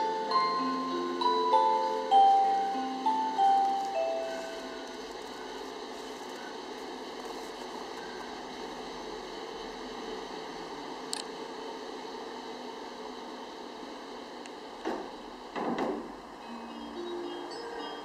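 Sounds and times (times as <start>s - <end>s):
glockenspiel-like chime note: 0.0s - 4.8s, 16.4s - 18.0s
steady background noise: 0.0s - 18.0s.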